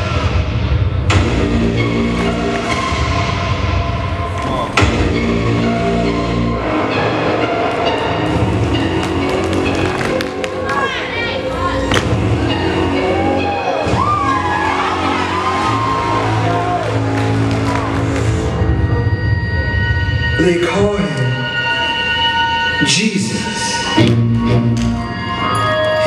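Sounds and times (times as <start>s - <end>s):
dramatic music with deep bass: 0.0s - 26.0s.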